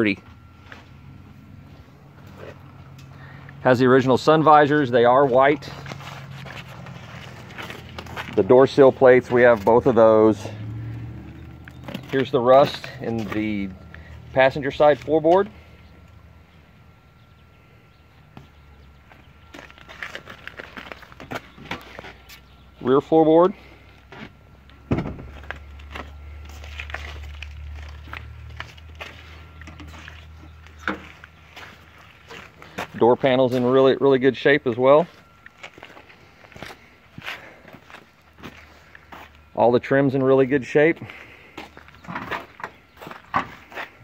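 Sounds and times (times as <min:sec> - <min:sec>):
low steady hum: 0:00.0 - 0:44.0.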